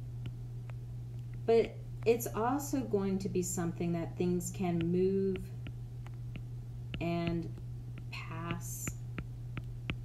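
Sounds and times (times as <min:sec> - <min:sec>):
steady low hum: 0:00.0 - 0:10.0
stylus clicking on tablet screen: 0:04.8 - 0:10.0.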